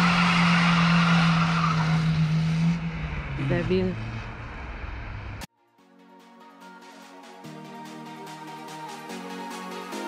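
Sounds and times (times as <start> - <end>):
car engine and road noise: 0.0 - 5.5
electronic music: 5.9 - 10.0.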